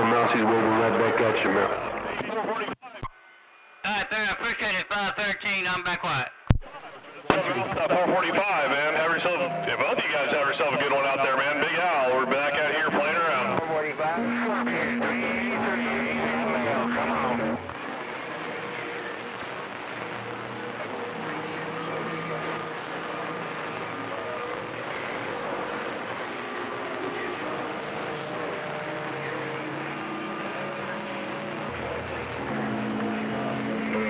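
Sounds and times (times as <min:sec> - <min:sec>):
radio static hiss: 0:03.8 - 0:34.0.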